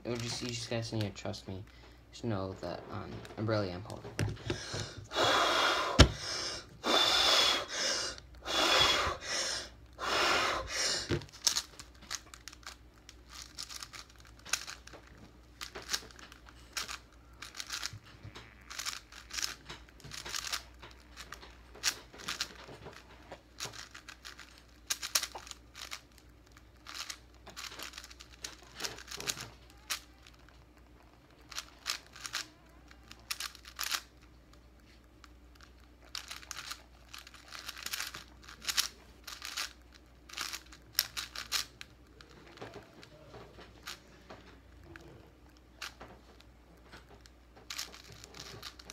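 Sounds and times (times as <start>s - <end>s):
loud deep breaths: 4.4s - 11.2s
puzzle cube clicking: 11.0s - 17.9s, 18.6s - 22.6s, 23.6s - 26.2s, 26.8s - 30.4s, 31.5s - 34.2s, 35.6s - 42.8s, 47.6s - 48.9s.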